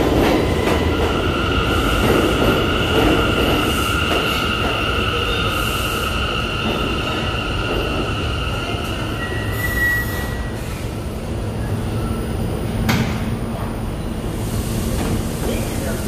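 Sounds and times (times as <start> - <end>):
low rumble of train cars: 0.0 - 16.0
train wheels squealing: 3.4 - 11.0.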